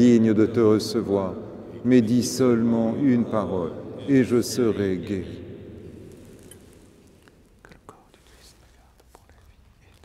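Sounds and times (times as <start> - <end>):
person whispering a prayer: 0.0 - 5.5, 7.3 - 10.0.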